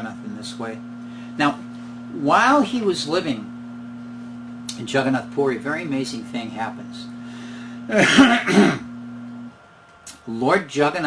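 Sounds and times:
man clearing his throat: 7.9 - 8.9.

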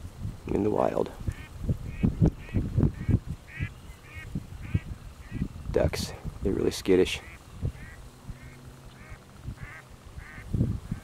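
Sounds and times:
waterfowl calling: 1.3 - 5.5, 7.2 - 11.0.

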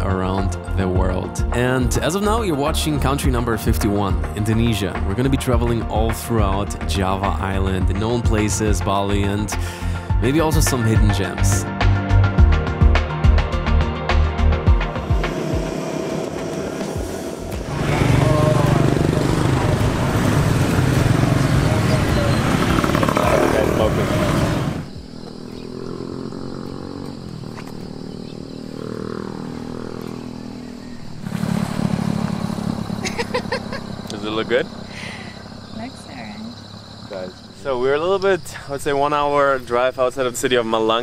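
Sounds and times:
background music: 0.0 - 24.9
engine passing by: 14.9 - 38.3
motorbike and scooter engines: 14.9 - 39.8
voices: 17.6 - 29.6, 33.0 - 41.0.

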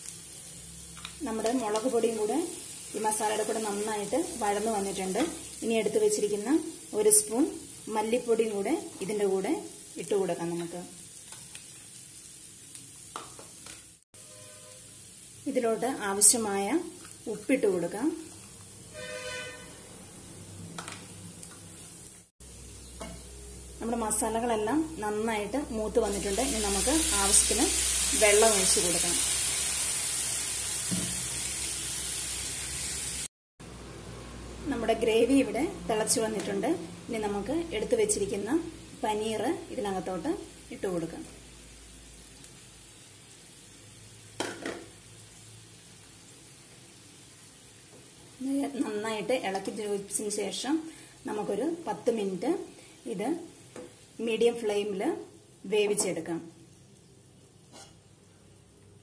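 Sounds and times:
paste sizzling in a frying pan: 0.0 - 33.3, 35.0 - 58.9.

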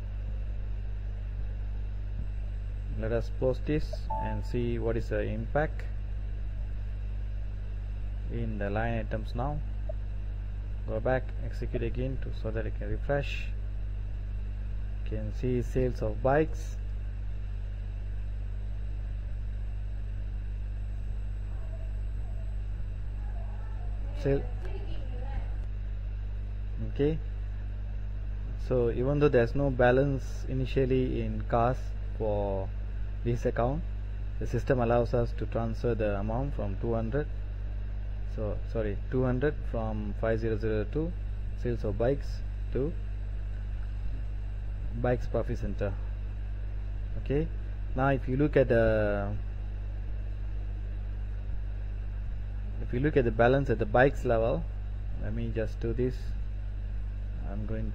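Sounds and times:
low electrical hum: 0.0 - 57.9.

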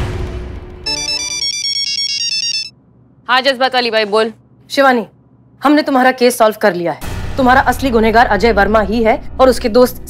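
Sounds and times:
mobile phone ringtone: 0.8 - 2.8.

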